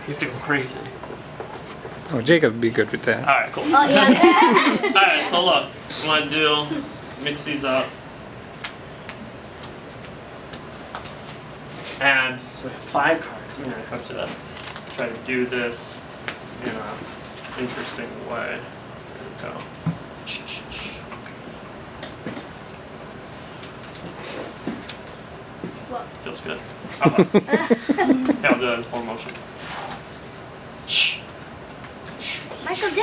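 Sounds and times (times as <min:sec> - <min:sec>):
low room hiss: 0:00.0 - 0:33.0.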